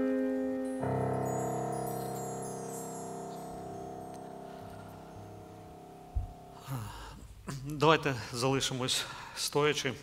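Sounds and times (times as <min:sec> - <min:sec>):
electric keyboard chord: 0:00.0 - 0:06.7
high shimmering chime: 0:00.7 - 0:07.0.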